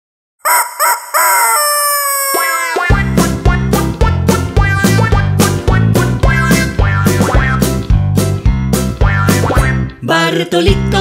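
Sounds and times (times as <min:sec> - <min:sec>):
rooster crowing: 0:00.4 - 0:02.8.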